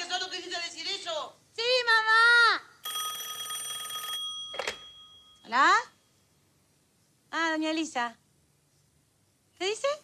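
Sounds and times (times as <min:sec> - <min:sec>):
telephone bell ringing: 0:02.8 - 0:05.5.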